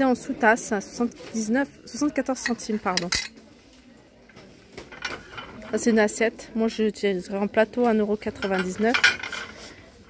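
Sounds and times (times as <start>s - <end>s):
porcelain plate clinking on plates: 2.4s - 3.4s, 8.3s - 9.6s.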